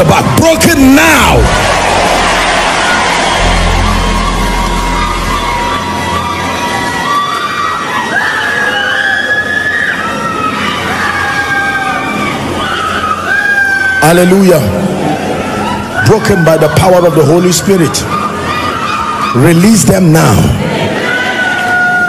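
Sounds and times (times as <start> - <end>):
background music: 0.0 - 19.9
congregation crying out and shrieking: 0.6 - 22.0
low bass note: 1.7 - 6.9.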